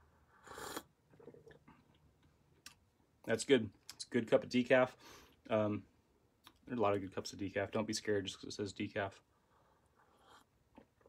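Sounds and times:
person sipping and tasting: 0:00.0 - 0:02.8.

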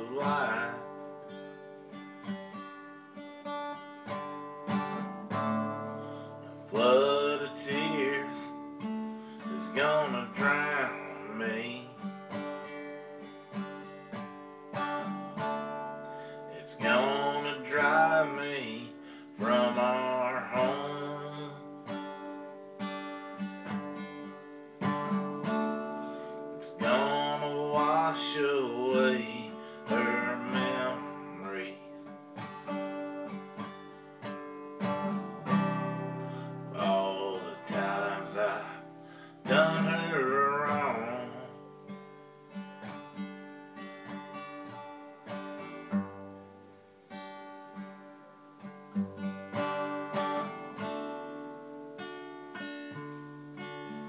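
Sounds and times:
acoustic guitar strumming: 0:00.0 - 0:54.0
wavering vocal phrases: 0:26.6 - 0:31.8.

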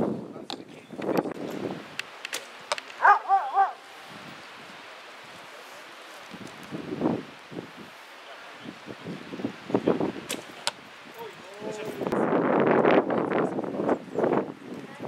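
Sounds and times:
steady outdoor hiss: 0:00.0 - 0:15.0
sharp clicks: 0:01.9 - 0:03.0.

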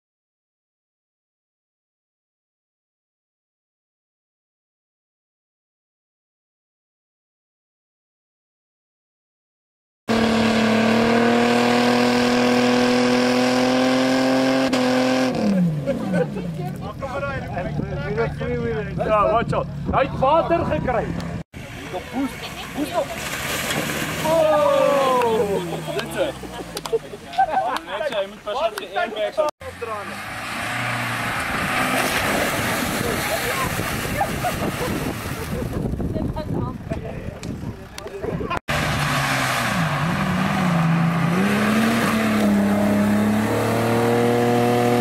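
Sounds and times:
engine revving hard: 0:10.1 - 0:16.2, 0:38.7 - 0:45.0
voices: 0:15.8 - 0:23.5, 0:24.2 - 0:30.3, 0:32.8 - 0:38.6.

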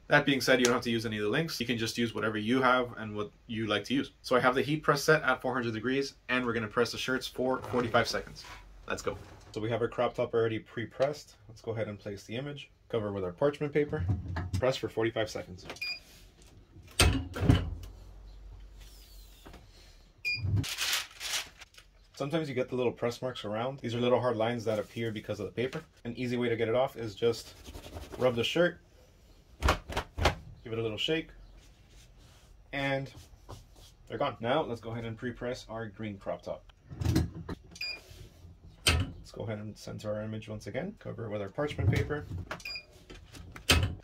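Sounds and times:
parchment paper rustling: 0:20.6 - 0:22.4.

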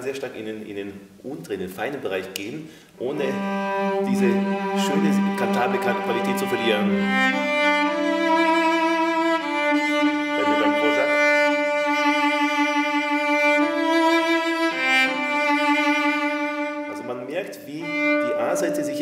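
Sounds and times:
cello bowed in sustained notes: 0:03.0 - 0:19.0.

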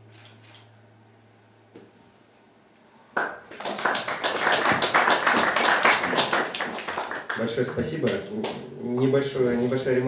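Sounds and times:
audience applause: 0:03.2 - 0:08.6.

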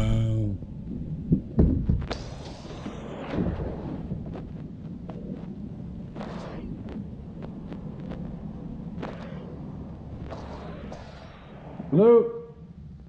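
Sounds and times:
low microphone rumble: 0:00.0 - 0:02.0, 0:03.9 - 0:10.3.

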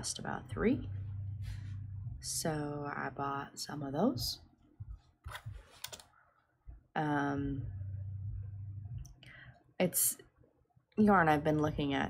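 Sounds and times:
knitting needles clicking: 0:05.8 - 0:06.1.

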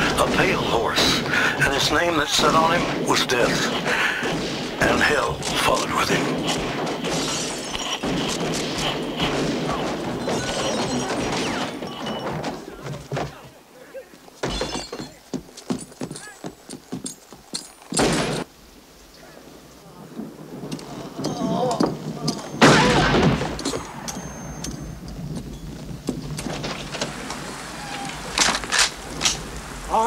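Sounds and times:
thunder: 0:00.0 - 0:12.5, 0:19.9 - 0:30.0
sharp cracks: 0:00.0 - 0:13.4, 0:20.6 - 0:25.5, 0:26.1 - 0:30.0
steady rain: 0:00.0 - 0:14.4, 0:15.2 - 0:30.0.

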